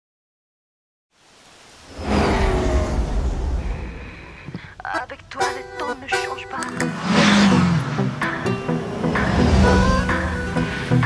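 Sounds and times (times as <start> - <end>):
rushing noise: 1.2 - 4.6, 6.9 - 11.0
deep rumble: 1.9 - 4.5.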